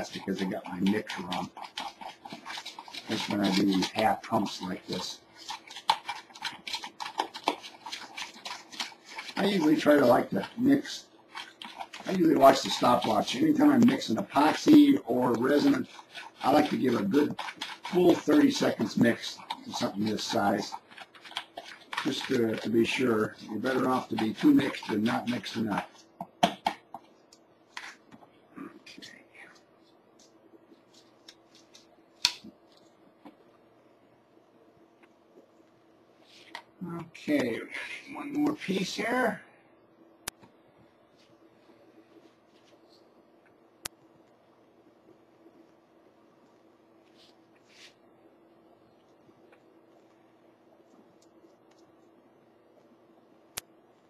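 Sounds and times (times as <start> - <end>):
stick scraping and tapping plastic tub: 0.0 - 28.2
faint steady hum: 0.0 - 54.0.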